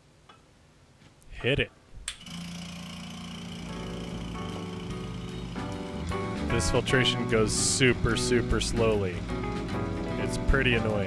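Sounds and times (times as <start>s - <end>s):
vacuum pump humming: 2.0s - 11.0s
music: 3.0s - 11.0s.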